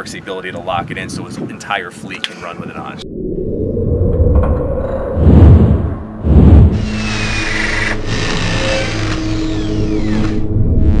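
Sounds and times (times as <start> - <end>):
heavy low hits: 3.0 - 9.3
mechanical drone: 3.0 - 11.0.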